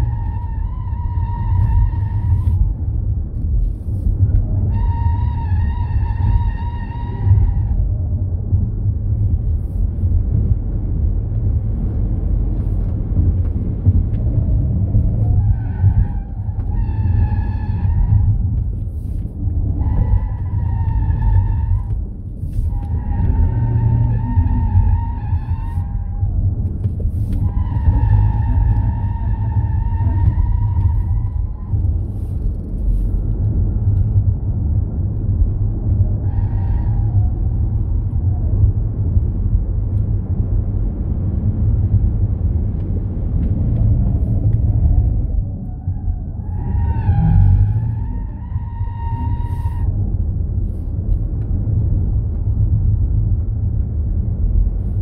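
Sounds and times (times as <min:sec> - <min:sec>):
road and wind rumble in car: 0:00.0 - 0:55.0.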